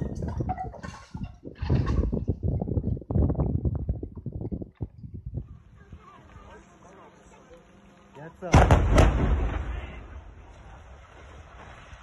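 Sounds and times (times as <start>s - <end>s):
explosive charges blasting: 8.5s - 10.2s.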